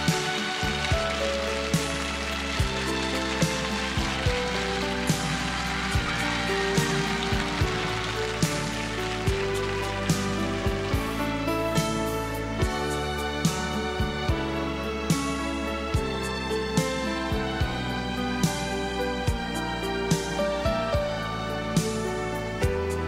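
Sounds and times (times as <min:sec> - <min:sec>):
slow pop ballad instrumental: 0:00.0 - 0:23.0.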